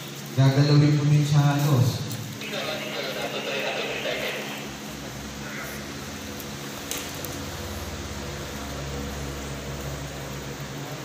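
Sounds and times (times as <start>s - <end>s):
even hiss: 0.0s - 11.0s
low mechanical hum: 0.0s - 11.0s.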